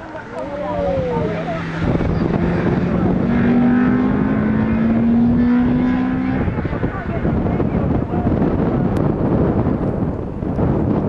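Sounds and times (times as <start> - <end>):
car engine pulling hard: 0.0 - 11.0
wind noise on microphone: 0.0 - 11.0.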